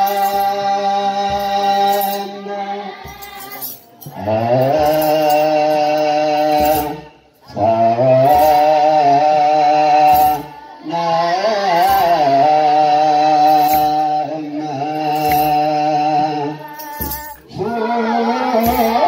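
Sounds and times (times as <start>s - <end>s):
metal sistrums jingling: 0.0s - 7.1s, 8.3s - 8.8s, 16.6s - 19.0s
children's choir chanting: 0.0s - 19.0s.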